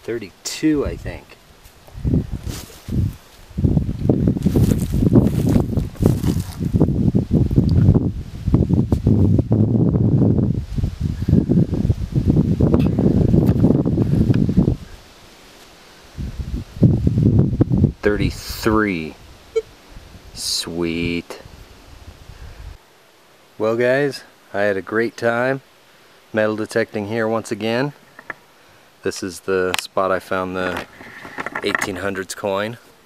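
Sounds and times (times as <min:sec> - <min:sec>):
gloved hands rustling on microphone: 0:01.6 - 0:08.0.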